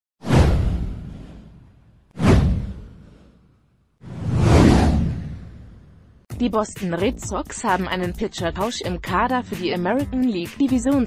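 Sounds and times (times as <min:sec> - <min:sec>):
deep whoosh: 0:00.2 - 0:06.2.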